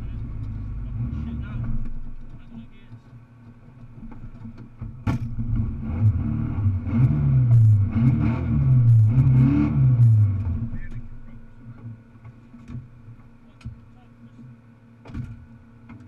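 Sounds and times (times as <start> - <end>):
car engine revving: 0.0 - 14.6.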